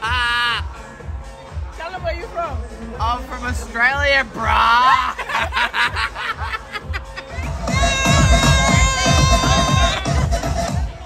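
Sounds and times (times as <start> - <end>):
background music with bass beat: 0.0 - 11.0
woman laughing: 4.8 - 11.0.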